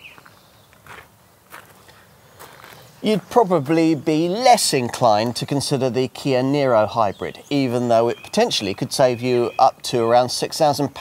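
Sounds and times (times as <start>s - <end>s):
footsteps on gravel: 0.0s - 3.8s.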